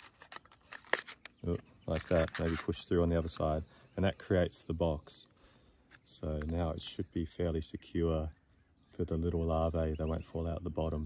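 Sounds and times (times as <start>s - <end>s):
cardboard box being folded: 0.0s - 1.2s.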